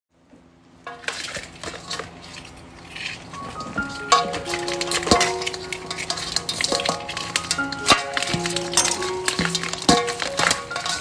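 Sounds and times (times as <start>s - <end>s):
cleaver scraping crab shells: 1.0s - 11.0s.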